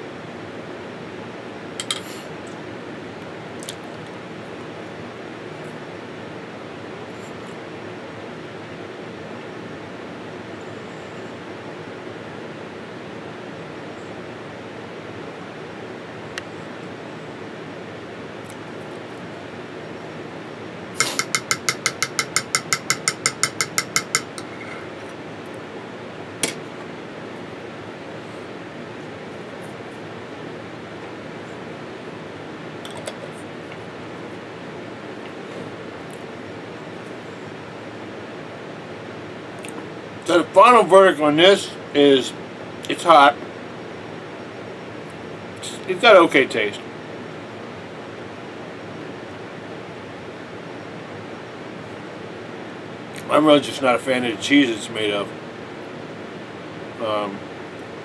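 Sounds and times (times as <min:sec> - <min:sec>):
low room hum: 0:00.0 - 0:58.0.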